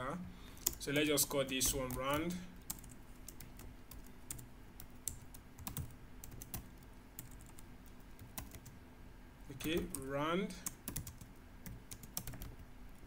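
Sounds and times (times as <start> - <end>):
computer keyboard typing: 0.6 - 8.8, 9.6 - 13.0.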